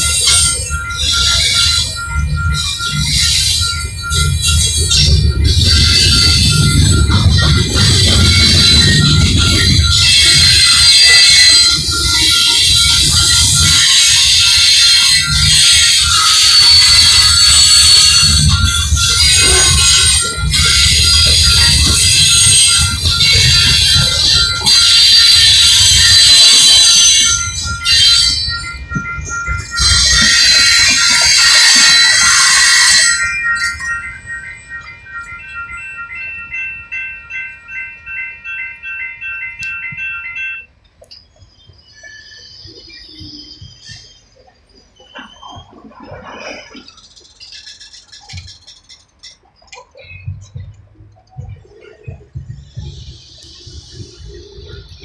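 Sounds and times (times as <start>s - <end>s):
crossing warning bell ringing: 0.0s - 55.0s
freight train rolling over rails: 0.0s - 55.0s.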